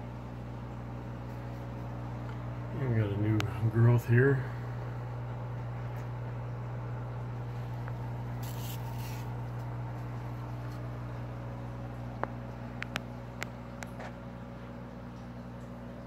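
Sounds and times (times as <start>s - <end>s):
equipment humming: 0.0s - 16.0s.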